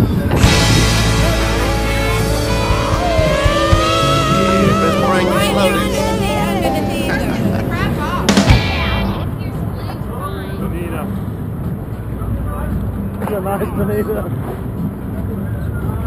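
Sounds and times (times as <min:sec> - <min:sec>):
boat engine: 0:00.0 - 0:12.2
loud sharp sound: 0:00.3 - 0:09.8
people shouting: 0:00.4 - 0:09.3.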